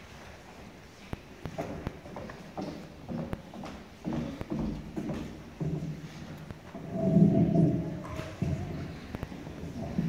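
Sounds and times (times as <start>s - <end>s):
hard-soled footsteps on wooden floor: 1.1s - 10.0s.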